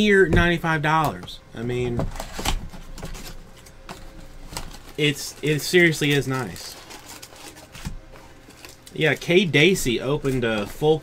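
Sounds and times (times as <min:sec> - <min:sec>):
packaging rustling: 0:01.8 - 0:11.0.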